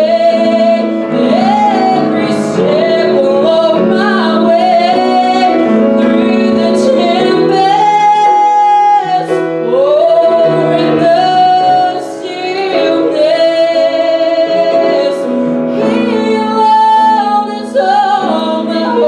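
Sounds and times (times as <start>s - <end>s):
piano accompaniment: 0.0s - 19.0s
woman singing: 0.0s - 19.0s.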